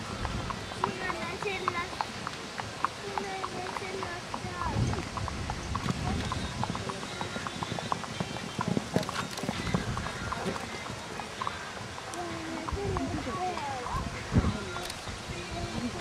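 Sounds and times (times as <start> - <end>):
horse hoofbeats on sand: 0.0 - 16.0
people's voices: 0.0 - 16.0.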